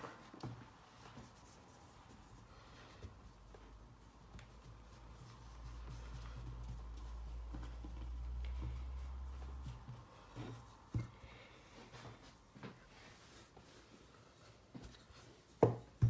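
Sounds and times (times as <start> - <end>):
hands smoothing dough: 0.0 - 16.0.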